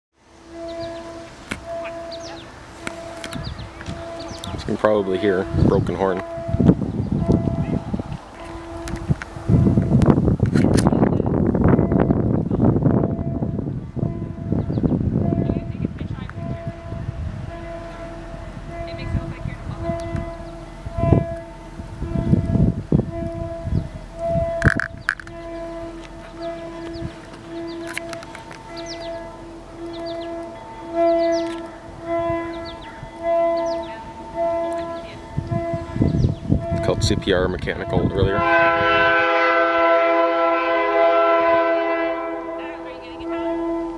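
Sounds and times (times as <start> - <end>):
distant locomotive air horn honks: 0.4 - 7.7, 16.3 - 37.1, 37.7 - 43.9.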